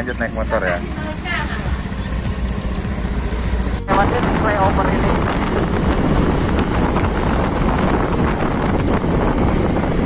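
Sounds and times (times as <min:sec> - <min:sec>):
motorcycle running: 0:00.0 - 0:10.0
road noise: 0:00.0 - 0:10.0
wind buffeting microphone: 0:03.9 - 0:10.0.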